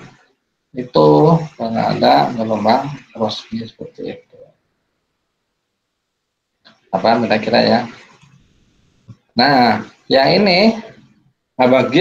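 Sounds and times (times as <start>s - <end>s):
person speaking: 0.7s - 4.6s, 9.1s - 12.0s.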